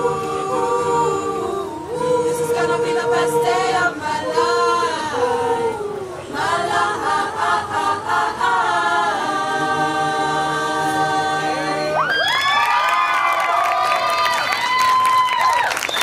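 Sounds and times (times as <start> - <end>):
choir singing a cappella: 0.0 - 12.2
audience whooping and cheering: 11.8 - 16.0.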